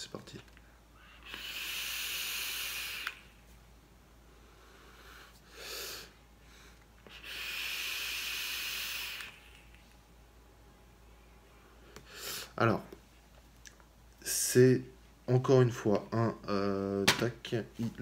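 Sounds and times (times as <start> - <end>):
person breathing: 0.6 - 3.4, 4.2 - 9.8, 11.4 - 12.6
electronic cigarette draw hiss: 1.0 - 3.4, 4.8 - 6.2, 7.0 - 9.8.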